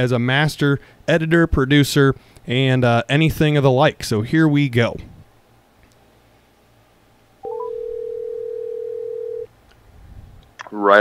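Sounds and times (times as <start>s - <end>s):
phone ringback tone: 7.4s - 9.5s
quick rising phone beeps: 7.4s - 9.5s.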